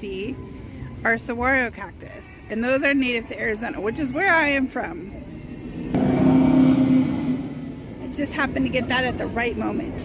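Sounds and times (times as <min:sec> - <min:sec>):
ride car rushing past: 0:05.8 - 0:09.3.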